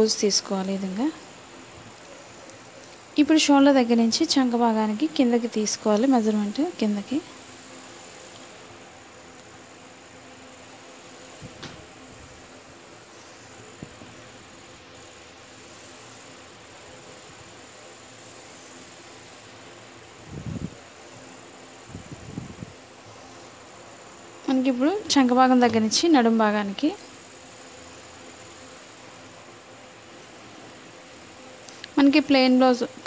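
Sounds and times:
background hum: 0.0s - 33.0s.

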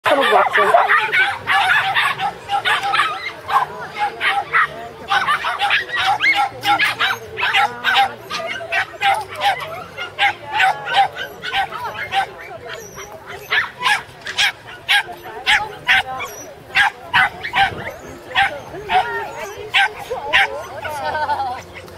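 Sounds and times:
dog barking and yipping: 0.1s - 21.1s.

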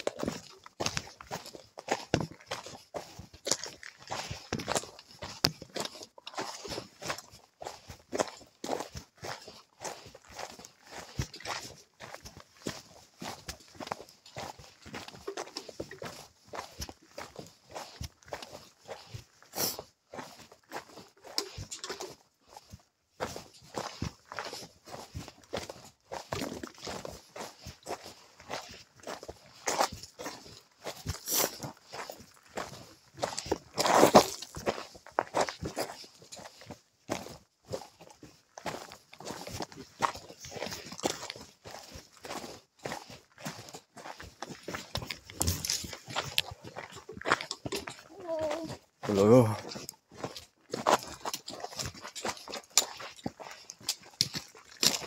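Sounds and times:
footsteps on trail: 0.0s - 55.0s.

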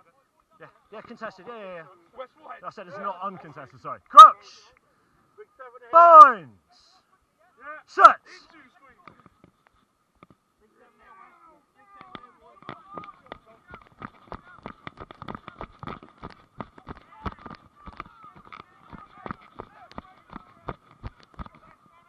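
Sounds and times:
voices shouting: 4.1s - 4.6s, 5.9s - 6.5s, 7.8s - 8.4s
running footsteps on grass: 12.5s - 22.0s.

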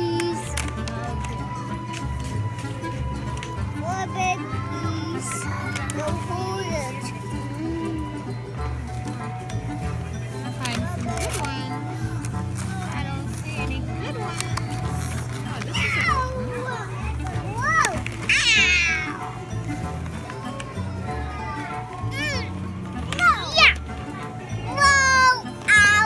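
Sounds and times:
toddler squealing: 17.6s - 19.2s.

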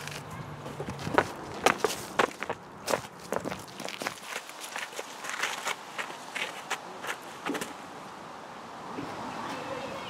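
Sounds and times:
footsteps on dry leaves: 0.0s - 7.4s.

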